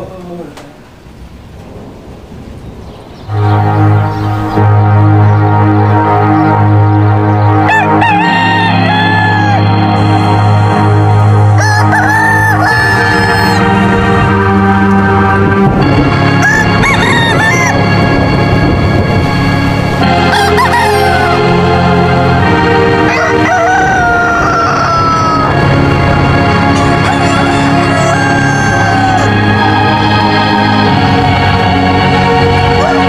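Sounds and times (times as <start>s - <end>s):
steady sustained music: 3.2s - 33.0s
rooster crowing: 7.6s - 10.1s, 11.6s - 13.9s, 16.4s - 17.9s, 20.1s - 21.6s, 23.0s - 25.8s, 26.7s - 29.8s, 32.8s - 33.0s.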